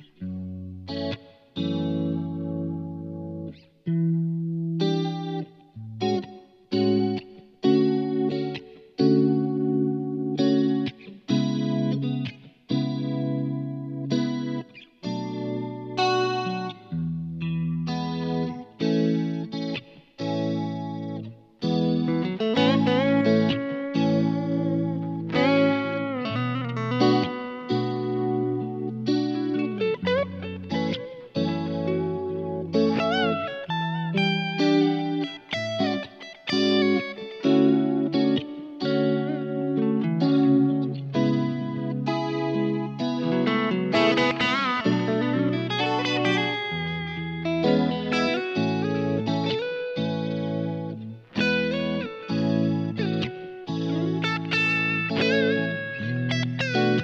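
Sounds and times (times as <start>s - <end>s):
electric guitar chords and melody: 0.0s - 57.0s.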